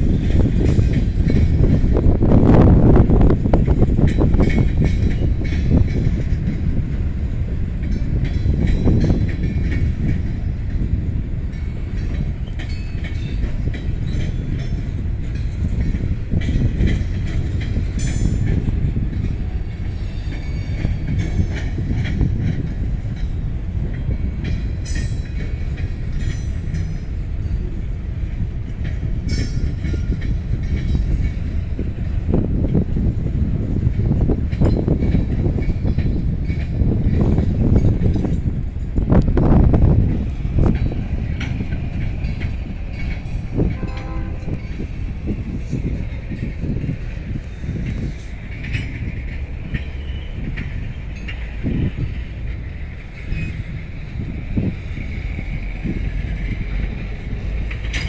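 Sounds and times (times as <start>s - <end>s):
steel wheels rumbling on rail: 0.0s - 58.0s
wheels clanking over rail joints: 0.0s - 58.0s.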